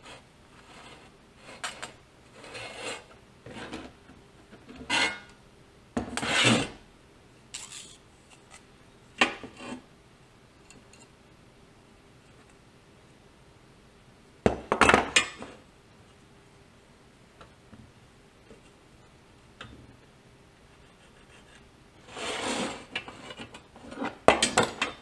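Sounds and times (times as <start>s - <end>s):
steel rule scraping: 0.0s - 3.9s, 4.8s - 5.3s, 20.8s - 24.2s.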